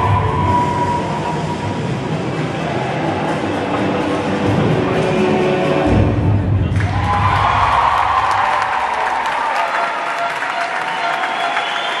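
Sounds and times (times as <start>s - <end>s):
audience applauding and cheering: 0.0s - 3.5s, 6.7s - 12.0s
low music: 0.0s - 8.9s.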